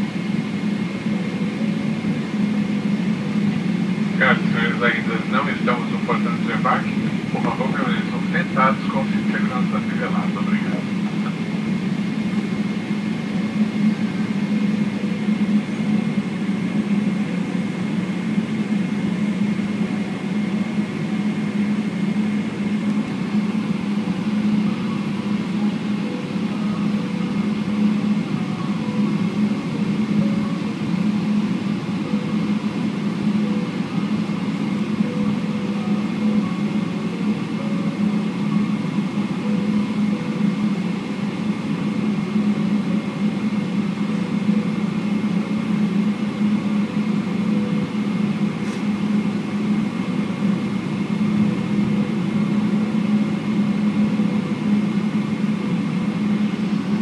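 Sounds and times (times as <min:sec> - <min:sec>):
aircraft cabin low hum: 0:00.0 - 0:57.0.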